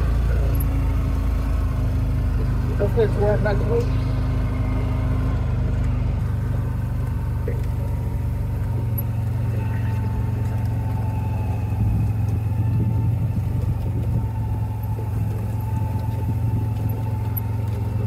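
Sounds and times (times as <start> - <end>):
vehicle engine humming: 0.0 - 18.0.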